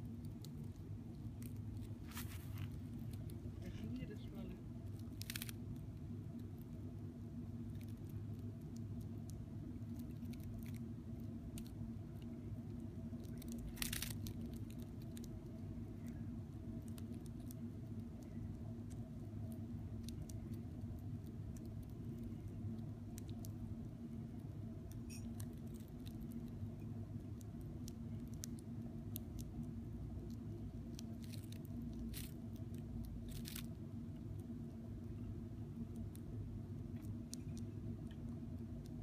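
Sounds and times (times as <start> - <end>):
low background hum: 0.0 - 39.0
insect jaws crunching: 5.0 - 5.6, 13.3 - 15.2, 31.1 - 32.4, 33.2 - 33.8
dragonfly jaws crackling: 13.3 - 15.2.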